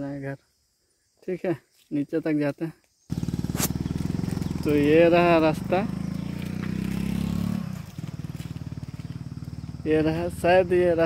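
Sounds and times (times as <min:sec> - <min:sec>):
small motorcycle engine running: 0:03.1 - 0:11.0.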